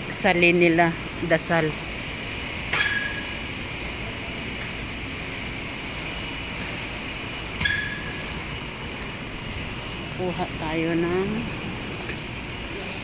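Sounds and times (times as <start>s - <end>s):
air-conditioning noise: 0.0s - 13.0s.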